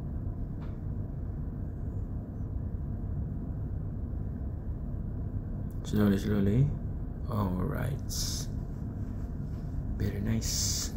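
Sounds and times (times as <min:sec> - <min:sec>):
low rumble of machinery: 0:00.0 - 0:10.9.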